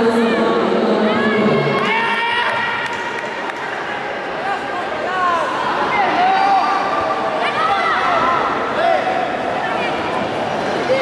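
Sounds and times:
crowd hubbub: 0.0 - 11.0.

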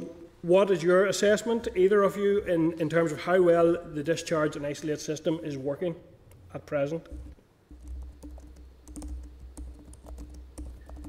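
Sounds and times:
low steady hum: 0.0 - 11.0
keyboard typing: 7.0 - 11.0.

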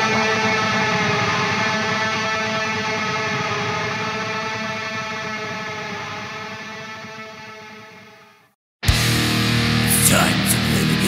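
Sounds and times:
distorted electric guitar chord: 8.9 - 11.0.

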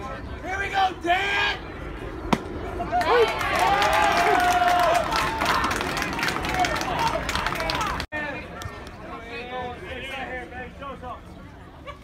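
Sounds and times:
murmur of crowd voices: 0.0 - 3.4, 4.1 - 12.0
spectators clapping: 3.0 - 8.1.

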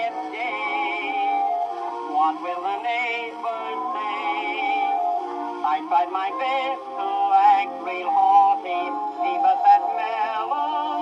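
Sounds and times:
man singing with vibrato: 0.0 - 1.5, 2.1 - 5.0, 5.6 - 11.0.

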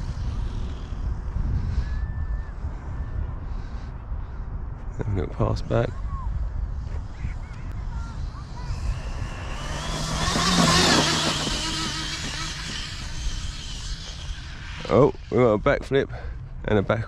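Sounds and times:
electric rc car motor whine: 0.0 - 1.9, 7.8 - 15.7.

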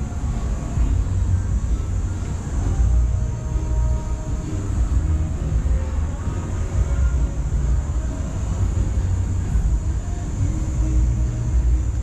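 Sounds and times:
low urban rumble: 0.0 - 12.0.

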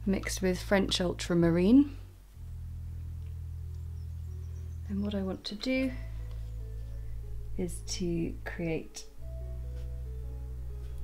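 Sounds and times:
soft music of sustained notes: 0.0 - 11.0.

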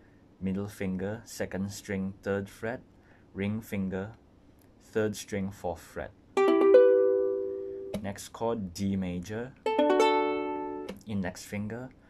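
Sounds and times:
ukulele chord strummed: 6.4 - 8.0, 9.6 - 10.9.

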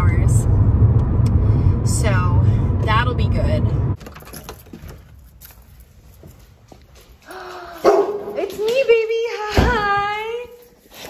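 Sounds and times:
keys jingling in a lock: 4.0 - 6.2.

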